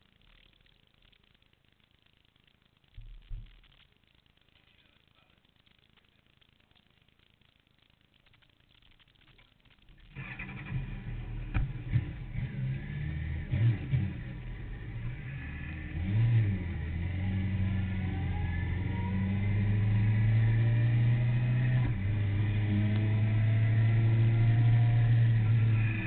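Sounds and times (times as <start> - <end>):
motorcycle engine: 10.0 - 26.0.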